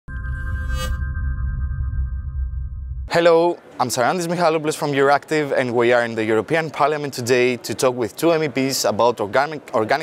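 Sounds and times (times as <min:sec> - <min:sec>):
bright high shimmer: 0:00.1 - 0:02.6
deep low rumble: 0:00.1 - 0:03.1.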